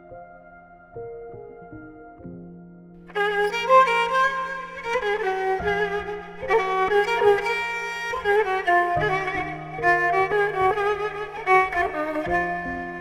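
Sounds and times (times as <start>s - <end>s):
bowed fiddle melody with vibrato: 3.0s - 13.0s.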